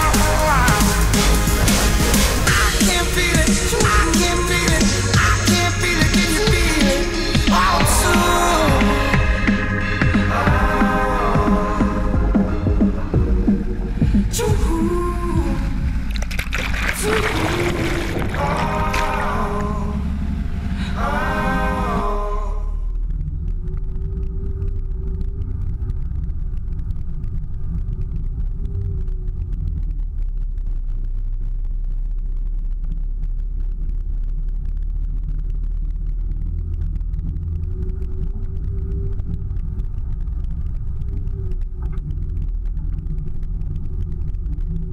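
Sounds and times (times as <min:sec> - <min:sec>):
engine hum: 0:00.0 - 0:44.9.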